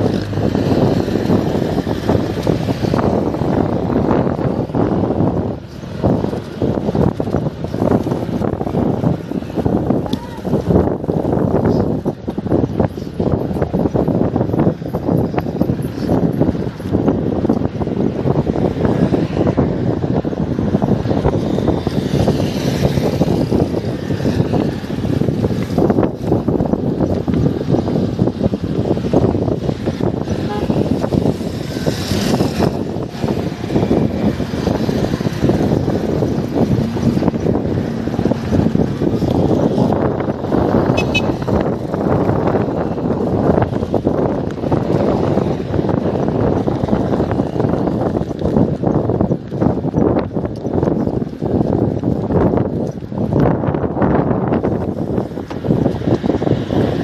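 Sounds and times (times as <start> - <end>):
bicycle road noise: 0.0 - 57.0
motor traffic passing: 0.0 - 57.0
wind on microphone: 0.0 - 57.0.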